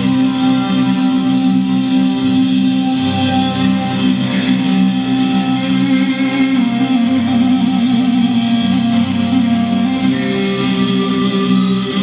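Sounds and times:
acoustic and electric guitars: 0.0s - 12.0s
live band playing: 0.0s - 12.0s.

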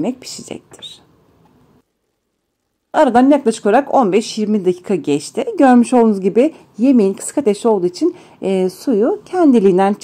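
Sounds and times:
person speaking: 0.0s - 1.2s, 2.9s - 10.0s.

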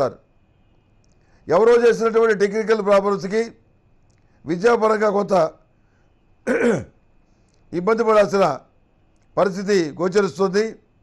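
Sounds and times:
man speaking: 1.5s - 3.6s, 4.4s - 5.6s, 7.7s - 8.7s, 9.4s - 10.8s
man clearing his throat: 6.4s - 7.0s.

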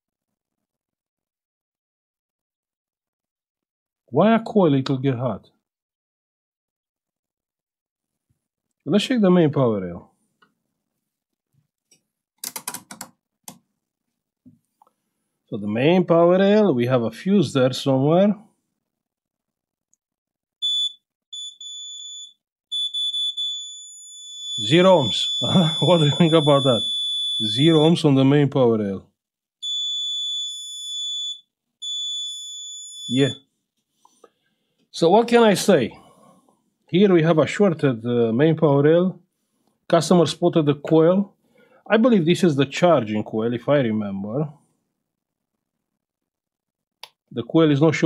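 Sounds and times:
multimeter continuity beeps: 20.6s - 28.0s, 29.6s - 33.4s.

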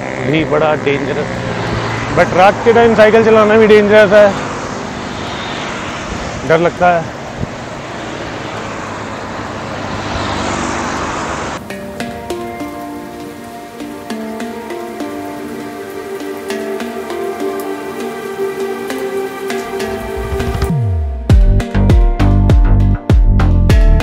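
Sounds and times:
traffic noise: 0.0s - 21.1s
wind noise: 5.0s - 6.6s, 7.2s - 8.8s
background music: 11.6s - 24.0s.

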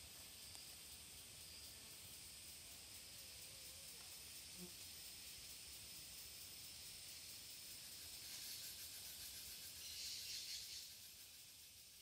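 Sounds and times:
faint high-pitched hiss: 0.0s - 12.0s.

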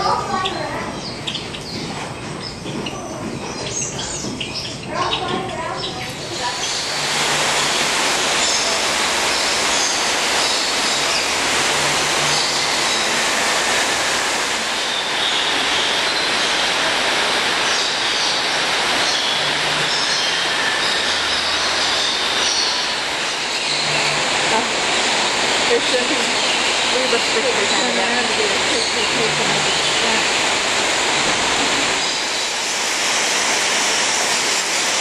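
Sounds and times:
falling water rushing: 0.0s - 2.2s, 3.2s - 35.0s
high bird calls: 0.0s - 34.5s.

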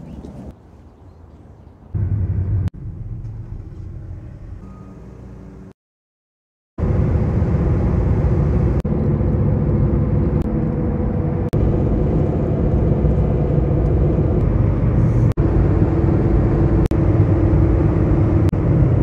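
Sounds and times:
road and engine drone in car cabin: 1.9s - 5.8s, 6.8s - 19.0s.

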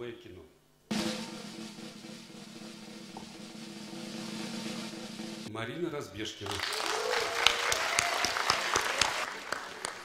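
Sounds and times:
audience applauding: 6.4s - 10.0s.

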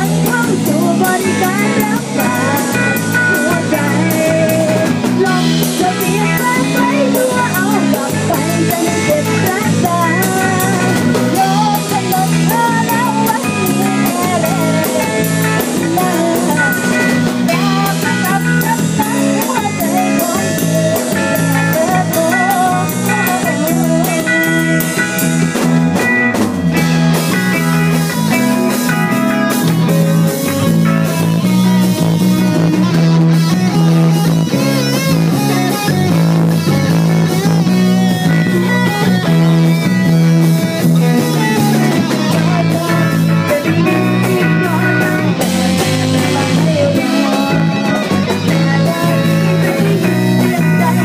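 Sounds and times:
bass guitar: 0.0s - 51.0s
drum kit: 0.0s - 51.0s
electric guitar lead lines: 0.0s - 51.0s.

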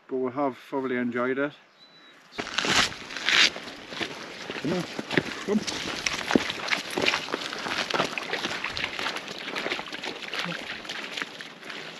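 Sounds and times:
footsteps crunching on stony path: 2.3s - 11.9s
scuffing of grit: 2.4s - 11.9s.

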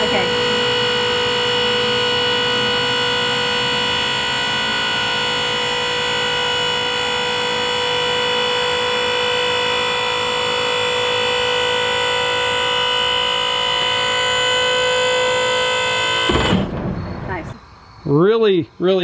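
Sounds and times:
hydraulic pump whining: 0.0s - 17.6s.

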